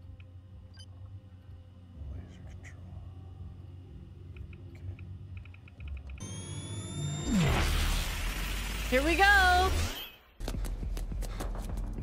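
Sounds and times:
rising electronic whine: 6.2s - 10.3s.

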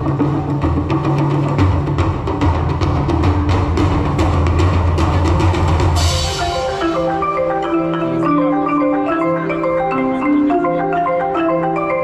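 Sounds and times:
drum kit beating: 0.0s - 12.0s
higher melodic notes: 3.8s - 12.0s.

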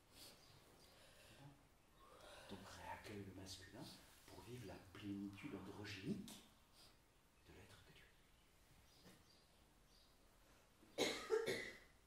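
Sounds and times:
person coughing: 11.0s - 11.9s.

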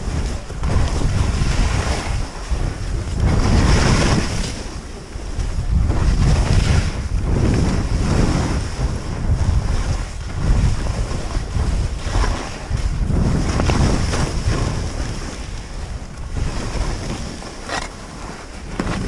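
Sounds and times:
skis scraping through snow: 0.0s - 19.0s
wind buffeting microphone: 0.0s - 19.0s.

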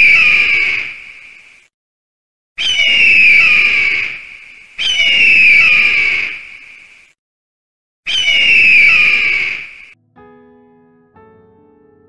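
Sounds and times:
eagle screeching: 0.0s - 1.2s, 2.6s - 6.9s, 8.1s - 10.0s.

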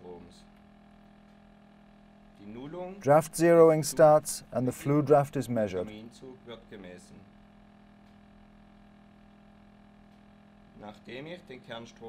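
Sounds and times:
faint low hum: 0.0s - 12.0s
man narrating: 2.5s - 6.1s.

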